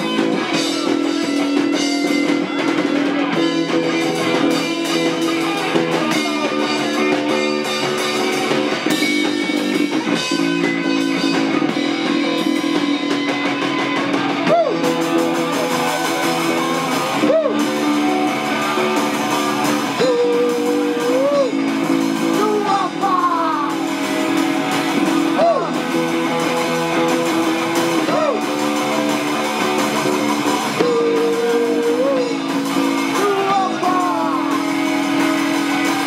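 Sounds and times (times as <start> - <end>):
punk rock band playing: 0.0 - 36.0.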